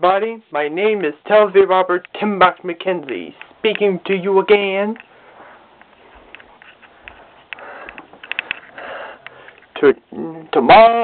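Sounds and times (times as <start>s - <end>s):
person speaking: 0.0s - 6.8s.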